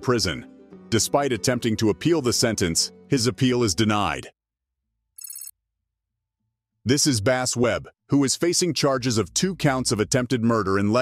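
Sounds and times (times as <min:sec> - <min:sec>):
electronic trilling ring: 0:05.2 - 0:05.5.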